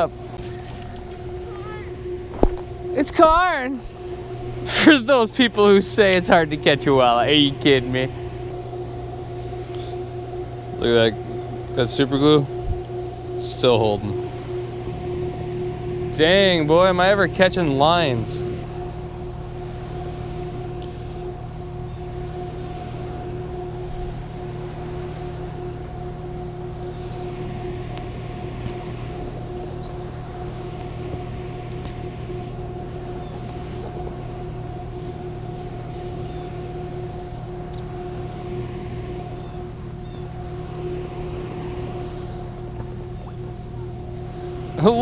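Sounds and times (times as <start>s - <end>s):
low rumble of moving water: 0.0s - 45.0s
two-note machine hum: 0.0s - 45.0s.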